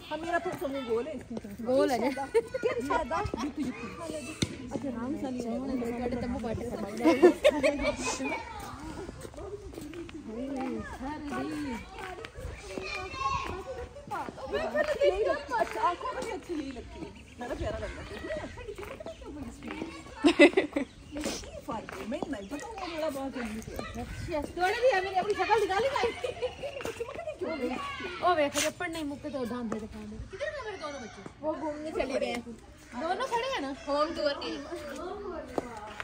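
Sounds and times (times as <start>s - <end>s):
children's voices: 0.0s - 36.0s
people chatting: 0.0s - 36.0s.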